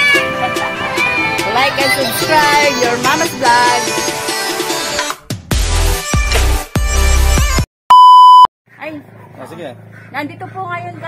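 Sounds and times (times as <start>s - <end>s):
electronic beep: 7.9s - 8.5s.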